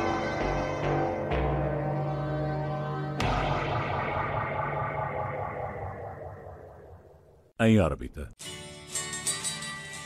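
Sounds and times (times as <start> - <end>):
distorted echoing electronic noise: 3.2 - 7.5.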